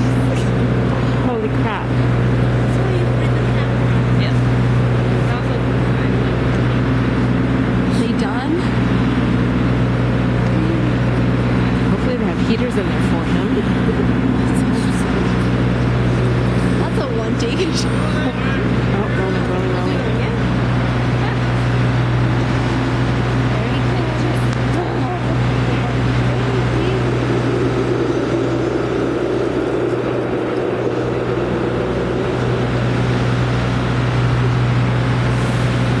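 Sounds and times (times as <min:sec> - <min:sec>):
faint voices: 0:00.0 - 0:36.0
large motor humming: 0:00.0 - 0:36.0.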